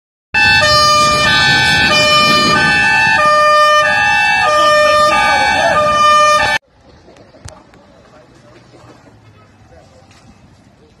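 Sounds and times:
two-tone emergency siren: 0:00.4 - 0:06.6.

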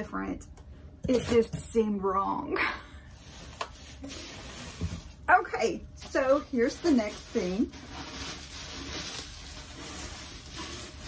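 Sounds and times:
bubble wrap crinkling: 0:03.0 - 0:11.0.

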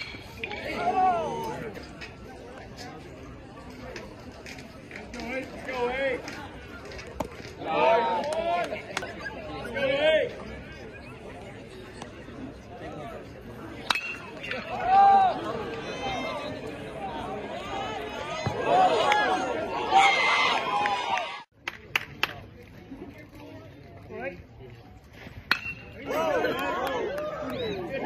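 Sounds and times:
spectators chatting: 0:00.0 - 0:28.0
baseball bat cracking ball: 0:25.5 - 0:26.0.

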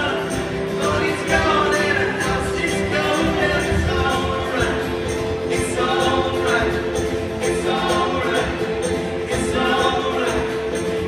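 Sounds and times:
strummed acoustic guitars: 0:00.0 - 0:11.0
upright bass: 0:00.0 - 0:11.0
voices singing together: 0:00.0 - 0:11.0.

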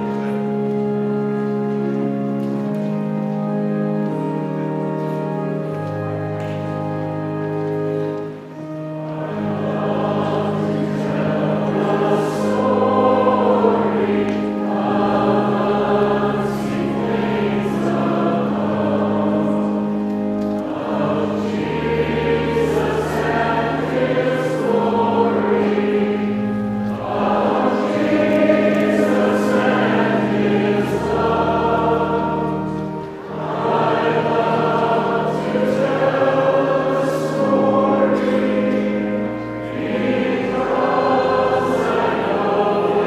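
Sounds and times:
choir singing a hymn: 0:00.0 - 0:43.0
pipe organ bass notes: 0:00.0 - 0:43.0.

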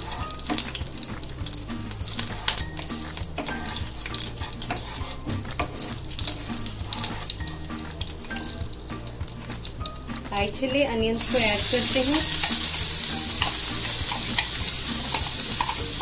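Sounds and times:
spices crackling and sizzling in oil: 0:00.0 - 0:16.0.

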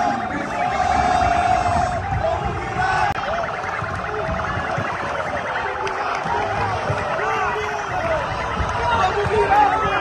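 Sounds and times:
crowd shouting: 0:00.0 - 0:10.0
pulsing electronic siren: 0:00.0 - 0:10.0.

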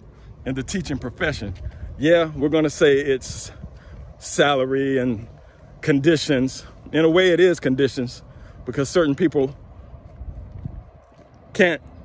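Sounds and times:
footsteps on paved path: 0:00.0 - 0:12.0
wind rumble on microphone: 0:00.0 - 0:12.0
man talking: 0:00.4 - 0:09.6, 0:11.5 - 0:12.0.

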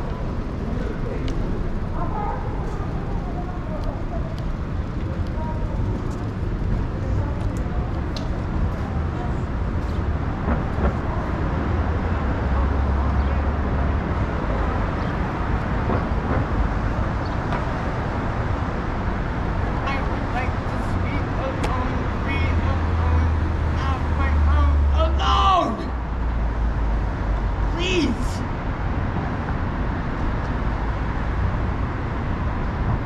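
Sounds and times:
faint voices: 0:00.0 - 0:13.8
city street traffic: 0:00.0 - 0:33.0
heavy vehicles passing: 0:00.0 - 0:33.0.

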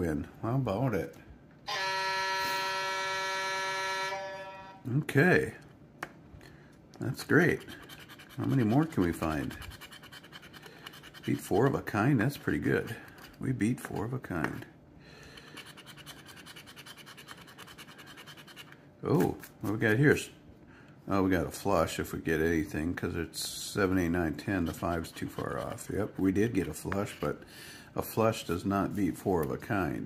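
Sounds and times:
steady horn-like chord: 0:01.7 - 0:04.9
coin scratching a ticket: 0:07.3 - 0:11.7, 0:15.4 - 0:18.8, 0:24.4 - 0:25.9.

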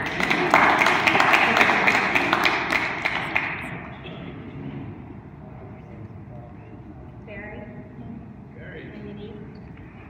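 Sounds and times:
people applauding: 0:00.0 - 0:03.8.

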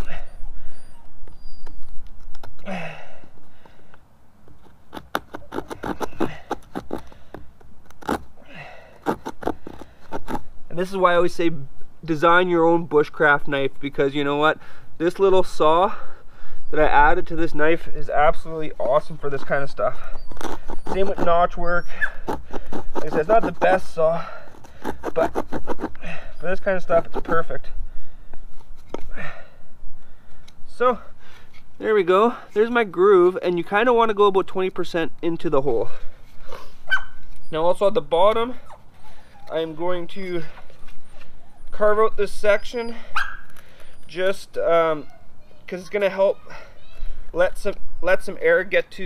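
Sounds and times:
small saw rasping through wood: 0:04.9 - 0:07.4, 0:08.9 - 0:10.5, 0:20.1 - 0:26.0, 0:26.6 - 0:27.5.

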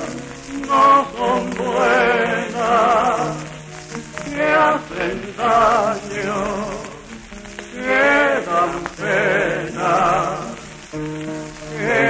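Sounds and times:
man singing: 0:00.0 - 0:03.6, 0:04.3 - 0:07.2, 0:07.8 - 0:10.8
crackling record surface noise: 0:00.0 - 0:12.0
guitars playing: 0:00.0 - 0:12.0.

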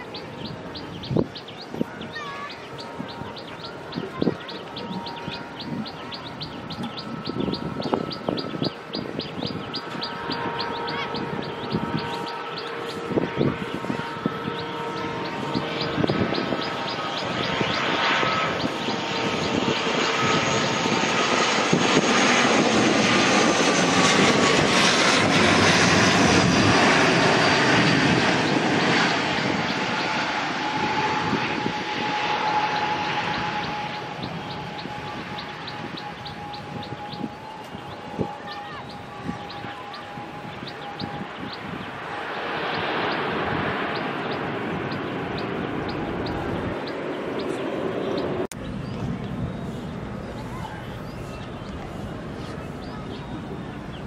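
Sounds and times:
birds chirping: 0:00.0 - 0:54.0
propeller airliner flying past: 0:00.0 - 0:54.0.

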